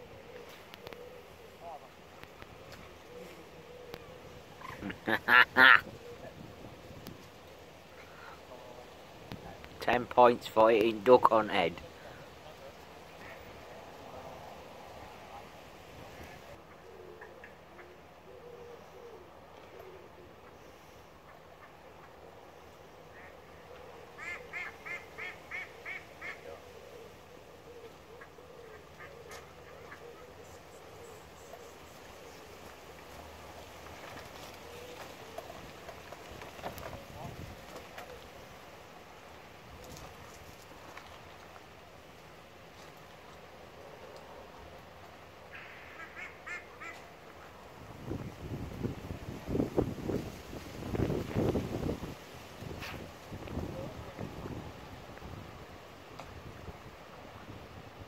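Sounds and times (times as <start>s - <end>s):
duck quacking: 4.6s - 5.9s, 45.5s - 47.0s.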